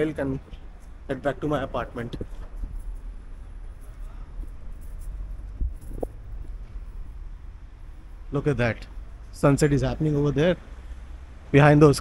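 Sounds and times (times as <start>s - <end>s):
wind buffeting microphone: 5.4s - 6.4s.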